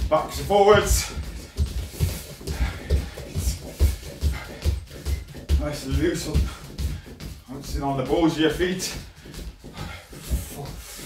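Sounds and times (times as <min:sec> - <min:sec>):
feet bouncing on wooden floor: 0:00.0 - 0:11.0.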